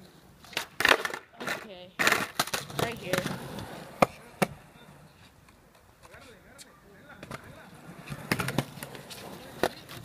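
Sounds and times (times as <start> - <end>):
skateboard wheels rolling on asphalt: 0.0 - 10.0
skateboard clacks: 0.4 - 10.0.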